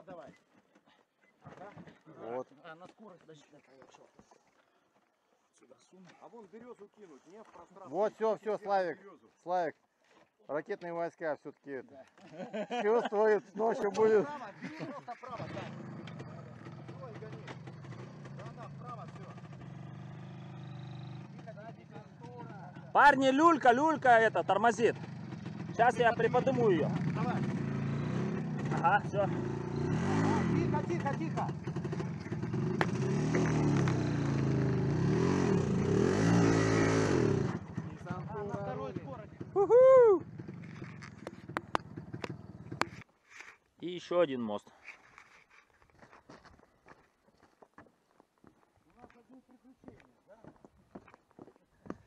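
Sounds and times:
motorcycle engine running: 15.3 - 43.0.

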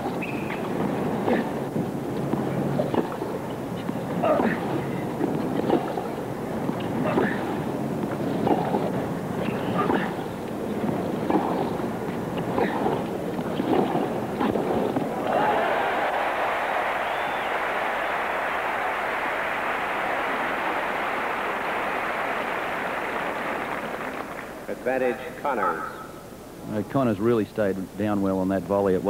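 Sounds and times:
low crowd hum: 0.0 - 29.0
crowd applause: 15.1 - 24.9.

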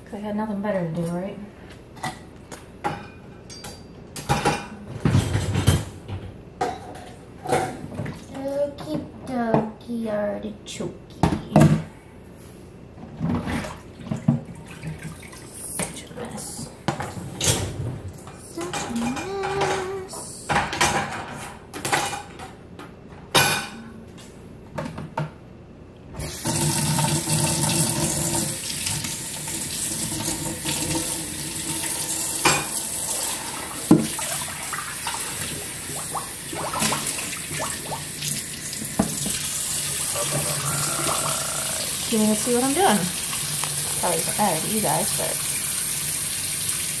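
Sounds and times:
dishes and utensils clinking: 2.8 - 5.9
tap water running into sink: 26.2 - 47.0.

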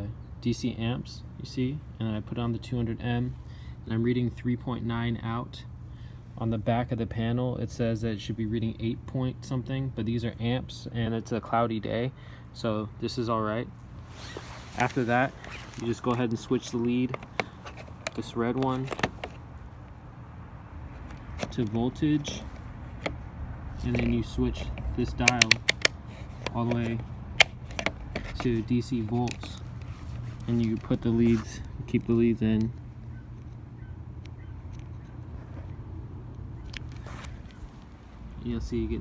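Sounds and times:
steady low rumble: 0.0 - 39.0.

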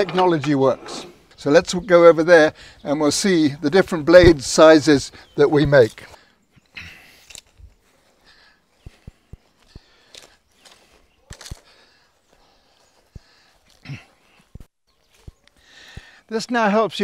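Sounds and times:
footsteps on grass: 2.8 - 16.7.

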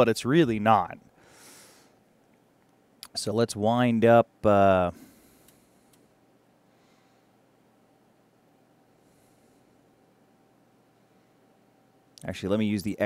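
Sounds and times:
thin steady hum: 0.0 - 13.0.

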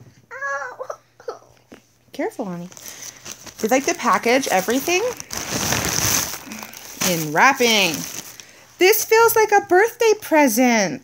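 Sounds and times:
tissue paper crinkling: 2.6 - 9.3.

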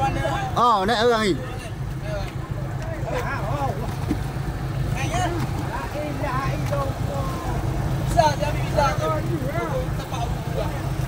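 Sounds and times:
boat engine rumbling: 0.0 - 11.0
men talking: 0.0 - 11.0.

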